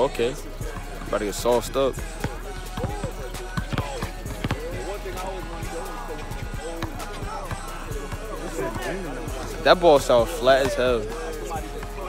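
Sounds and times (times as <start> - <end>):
music: 0.0 - 12.0
people talking: 0.0 - 12.0
basketball dribbling on hard court: 2.0 - 5.0.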